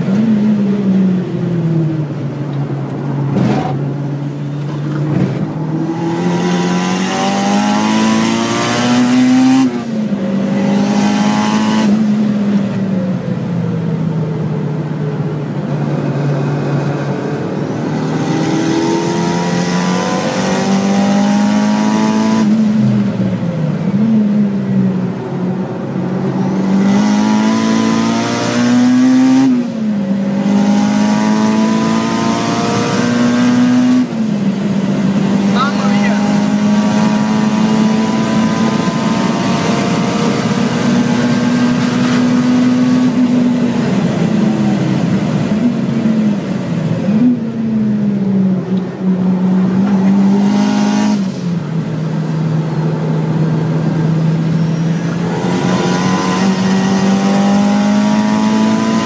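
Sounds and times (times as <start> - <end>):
car engine revving from inside cabin: 35.4 - 43.2, 54.5 - 59.0.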